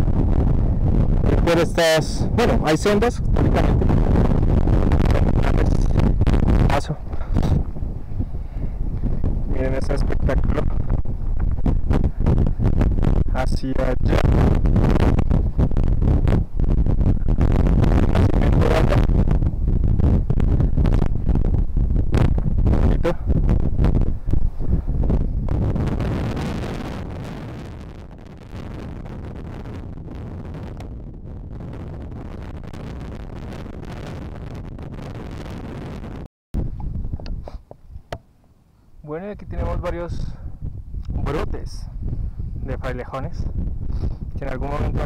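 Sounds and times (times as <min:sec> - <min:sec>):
wind buffeting microphone: 0:00.0 - 0:38.3, 0:38.9 - 0:45.0.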